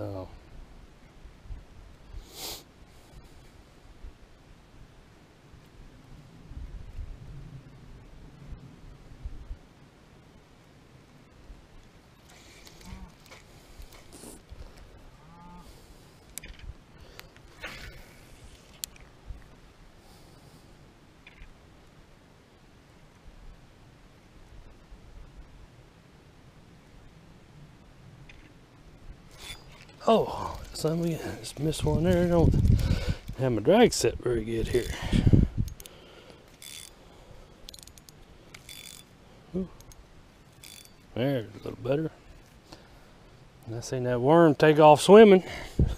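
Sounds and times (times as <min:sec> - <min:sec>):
fishing reel clicks: 0:35.6 - 0:35.9, 0:36.5 - 0:37.0, 0:37.6 - 0:39.1, 0:39.8 - 0:41.1.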